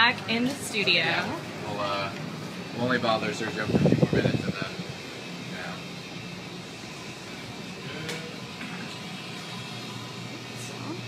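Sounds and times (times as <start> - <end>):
gas burner hissing: 0.0 - 11.0.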